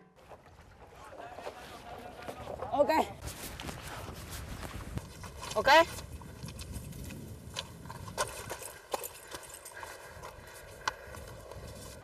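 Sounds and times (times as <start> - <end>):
running river water: 0.0 - 12.0
wind rumbling on microphone: 0.4 - 12.0.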